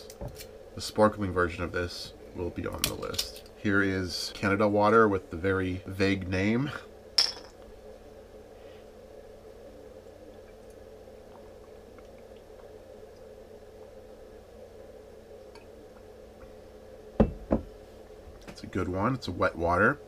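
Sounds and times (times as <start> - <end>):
low steady hum: 0.0 - 20.0
glass bottle clink: 7.2 - 7.6
soft drinking sounds: 9.6 - 16.8.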